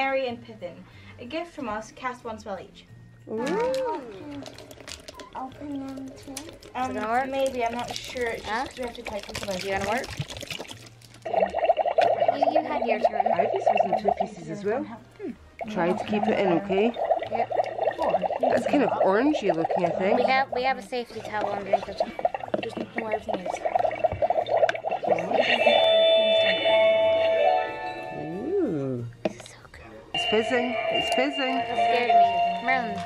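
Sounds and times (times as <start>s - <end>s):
liquid trickling into plastic container: 3.6s - 14.4s, 15.6s - 25.4s
rapidly pulsing gurgle: 6.5s - 14.7s, 15.6s - 26.0s
toy electronic chime tune: 25.3s - 28.3s, 30.2s - 33.0s.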